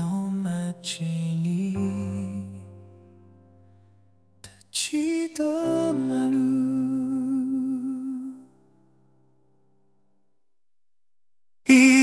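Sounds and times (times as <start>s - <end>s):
person singing a long note: 11.7s - 12.0s.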